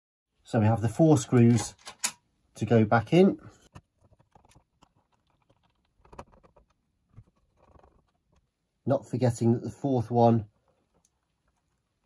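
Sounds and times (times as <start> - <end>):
screwdriver clicking and scraping: 1.2 - 2.2.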